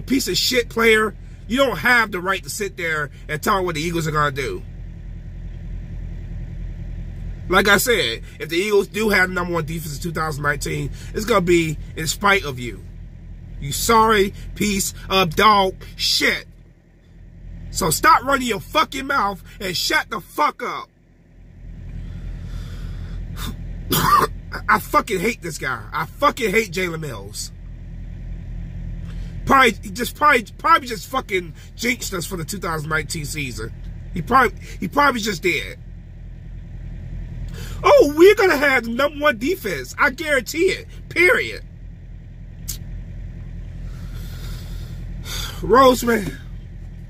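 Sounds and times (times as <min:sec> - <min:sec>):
truck engine idling: 0:00.0 - 0:47.0.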